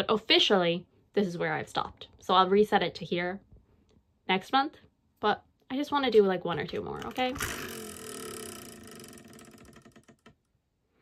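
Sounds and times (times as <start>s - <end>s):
spinner wheel clicking and whirring: 7.1s - 10.4s.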